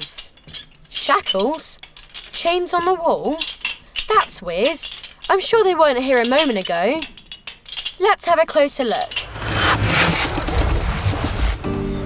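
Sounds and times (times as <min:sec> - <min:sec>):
rushing rumbling whoosh: 0:09.2 - 0:11.7.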